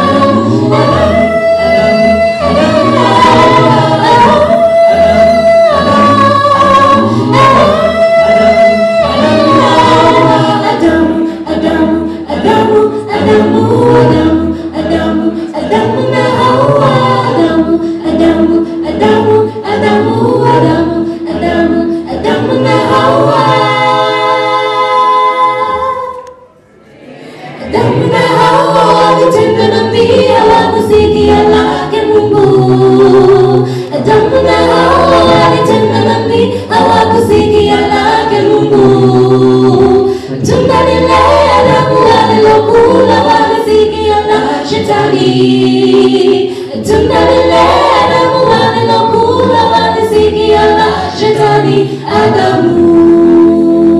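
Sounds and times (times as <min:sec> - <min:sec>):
a cappella group singing gospel: 0:00.0 - 0:53.9.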